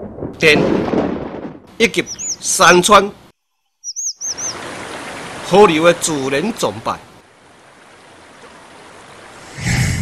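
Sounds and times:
bird chirping: 0:02.0 - 0:02.6, 0:03.7 - 0:04.6.

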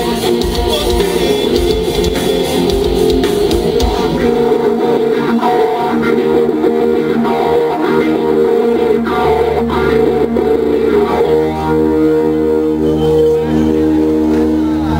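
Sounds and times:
rock band playing: 0:00.0 - 0:14.9.

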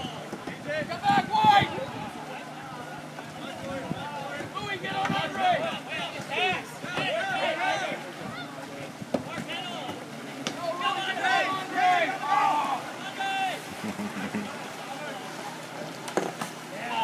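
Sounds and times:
people shouting across water: 0:00.0 - 0:17.0.

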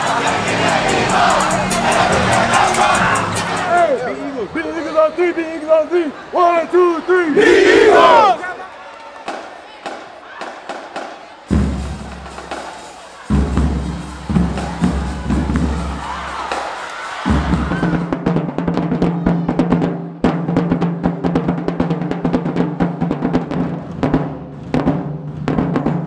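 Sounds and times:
team shouting a chant: 0:00.0 - 0:08.7
murmur of large crowd: 0:00.0 - 0:26.0.

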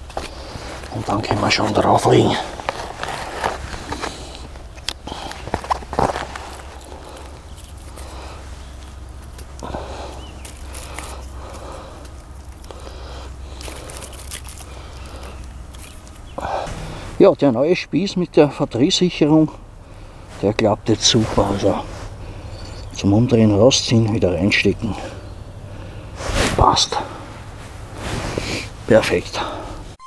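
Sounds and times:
twigs clicking and knocking: 0:00.0 - 0:16.9
steady low rumble: 0:00.0 - 0:30.0.

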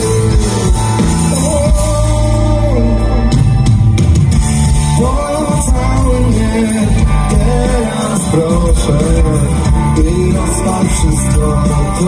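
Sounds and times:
person singing: 0:00.0 - 0:03.8, 0:04.8 - 0:12.0
electric guitar: 0:00.0 - 0:12.0
live rock band playing: 0:00.0 - 0:12.0.

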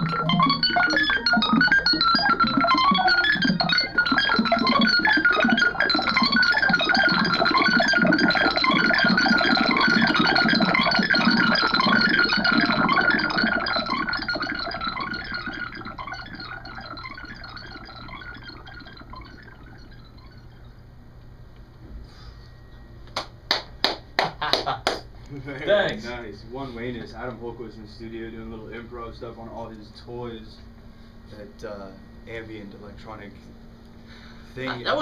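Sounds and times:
noisy sequenced electronic music: 0:00.0 - 0:21.1, 0:34.6 - 0:35.0.

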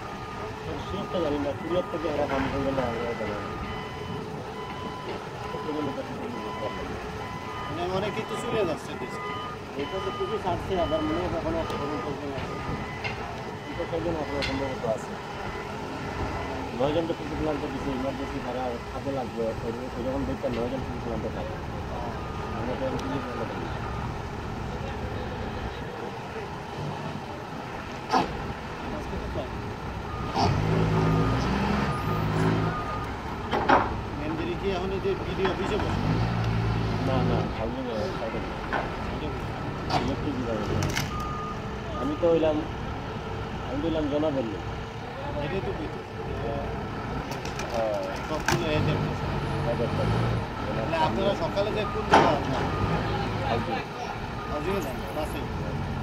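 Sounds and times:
forklift engines running: 0:00.0 - 0:56.0
engine revving: 0:30.1 - 0:34.0, 0:34.6 - 0:41.6, 0:48.3 - 0:56.0.

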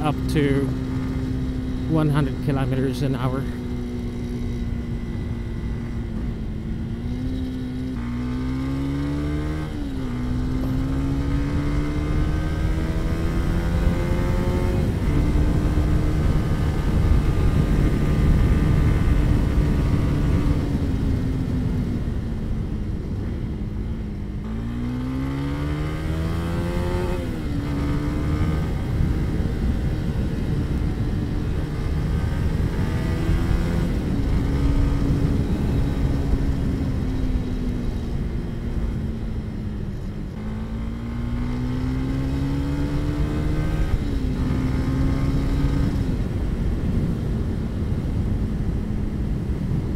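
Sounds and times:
motorcycle engine accelerating: 0:00.0 - 0:49.9
wind rush on microphone: 0:09.3 - 0:24.9, 0:25.5 - 0:40.9, 0:42.2 - 0:49.9.

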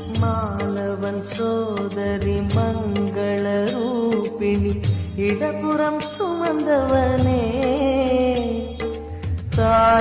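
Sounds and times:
percussion strokes: 0:00.0 - 0:10.0.

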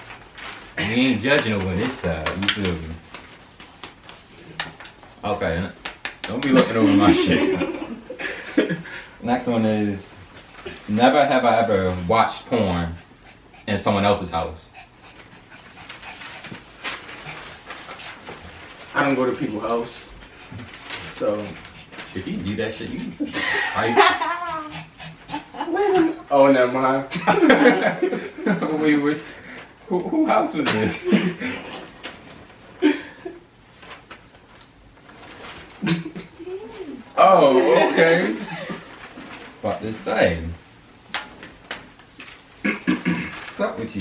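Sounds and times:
paper rustling and crackling: 0:00.0 - 0:07.8, 0:15.3 - 0:24.4, 0:29.4 - 0:37.0, 0:37.8 - 0:42.6
group laughing: 0:06.4 - 0:09.0, 0:23.0 - 0:26.3, 0:27.1 - 0:28.9, 0:30.6 - 0:31.9, 0:37.4 - 0:38.9
person's wavering vocal sound: 0:36.4 - 0:37.2.

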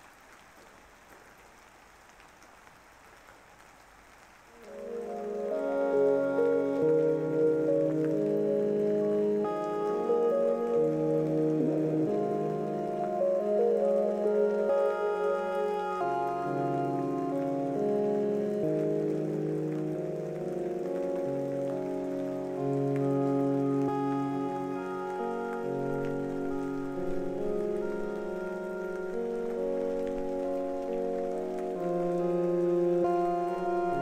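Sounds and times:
steady rain: 0:00.0 - 0:34.0
slow soft background music: 0:04.6 - 0:34.0.

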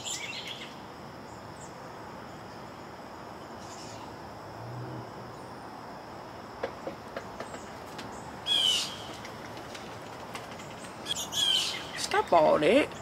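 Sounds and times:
birds chirping and calling: 0:03.6 - 0:04.2, 0:07.2 - 0:13.0.

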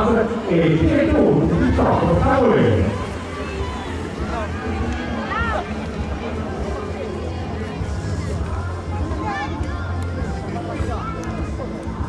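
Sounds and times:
faint distant voices calling: 0:02.4 - 0:12.0.

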